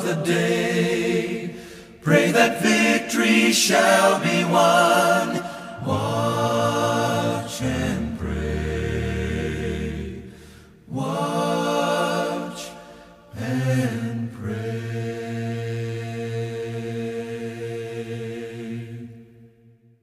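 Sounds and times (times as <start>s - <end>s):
voices singing a hymn: 0.0s - 19.7s.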